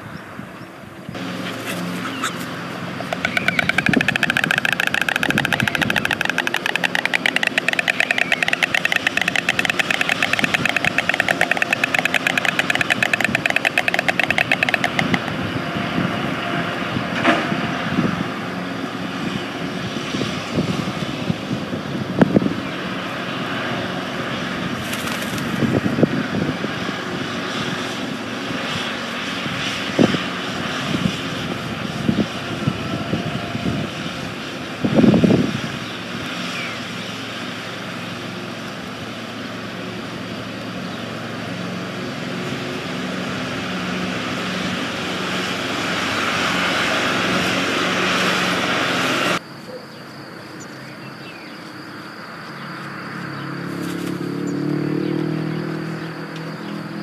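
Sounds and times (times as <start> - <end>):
steady engine drone: 0.0 - 57.0.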